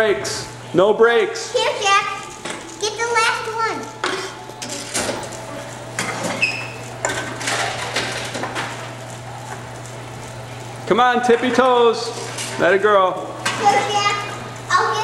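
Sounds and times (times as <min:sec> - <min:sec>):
machine motor hum: 0:00.0 - 0:15.0
cans and bottles clattering: 0:03.8 - 0:09.0.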